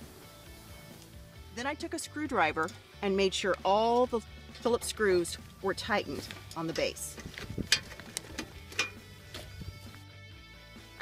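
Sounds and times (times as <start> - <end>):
music with plucked guitar notes: 0.8 - 10.0.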